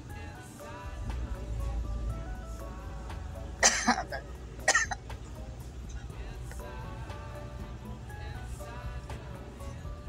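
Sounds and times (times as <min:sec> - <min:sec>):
music from car stereo: 0:00.0 - 0:10.0
low road rumble: 0:00.8 - 0:10.0
sharp coughs: 0:03.6 - 0:05.1.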